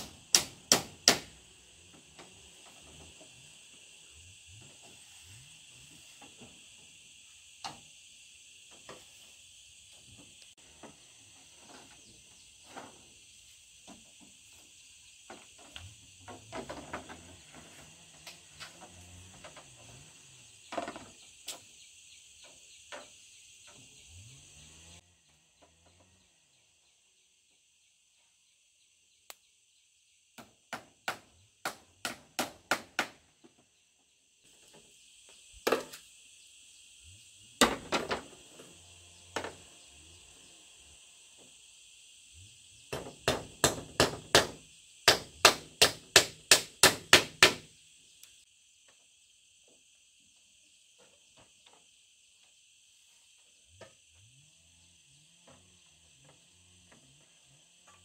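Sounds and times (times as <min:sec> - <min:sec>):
hammer striking bamboo: 0:00.0 - 0:01.4, 0:30.4 - 0:33.4, 0:37.6 - 0:38.2, 0:42.9 - 0:47.7
insects chirring: 0:00.0 - 0:58.0.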